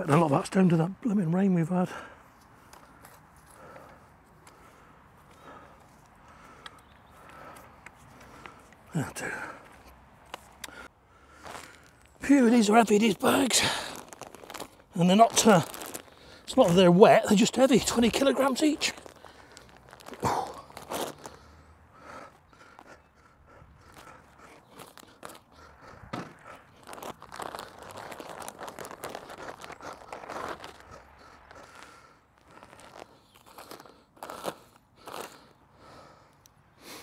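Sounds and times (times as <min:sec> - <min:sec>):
plastic sack crinkling: 0:11.5 - 0:21.4, 0:23.9 - 0:35.5
compost pouring out: 0:12.4 - 0:21.1.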